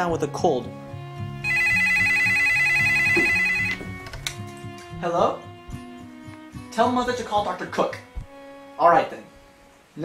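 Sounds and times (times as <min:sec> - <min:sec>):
telephone ringing: 0:01.4 - 0:04.0.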